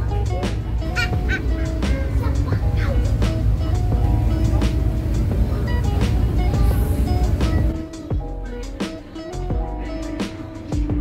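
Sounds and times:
ferry engines droning: 0.0s - 8.8s
background music: 0.0s - 11.0s.

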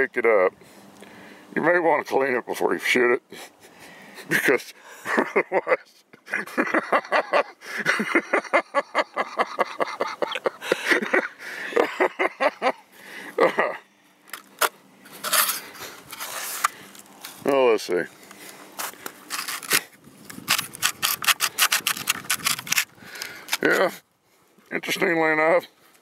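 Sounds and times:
man laughing: 3.3s - 13.9s
hands rubbing and scraping shotgun: 15.1s - 17.4s, 18.7s - 23.7s.

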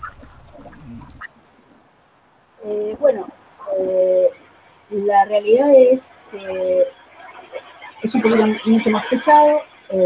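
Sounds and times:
faint voice-like sounds: 0.0s - 2.0s, 2.6s - 10.0s
low hum: 0.0s - 10.0s.

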